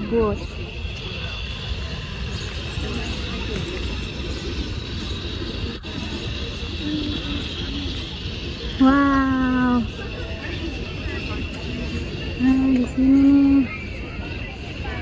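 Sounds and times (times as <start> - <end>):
faint distant voices: 0.0 - 15.0.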